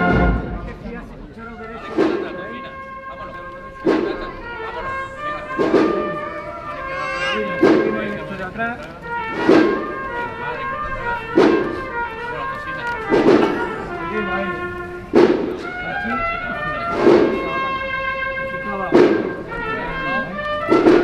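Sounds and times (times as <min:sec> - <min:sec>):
brass chords: 0:00.0 - 0:21.0
heavy drum beat: 0:00.0 - 0:21.0.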